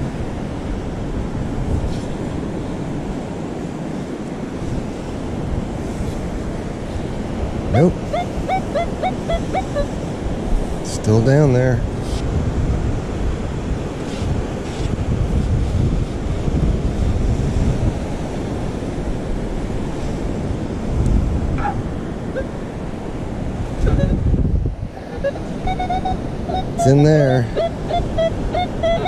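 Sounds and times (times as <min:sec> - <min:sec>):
surf washing: 0:00.0 - 0:29.0
wind buffeting microphone: 0:00.0 - 0:29.0.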